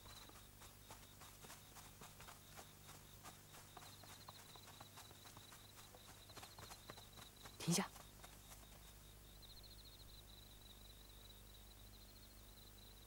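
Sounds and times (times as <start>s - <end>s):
faint footstep-like clicks: 0.0s - 9.0s
crickets chirping: 0.0s - 13.0s.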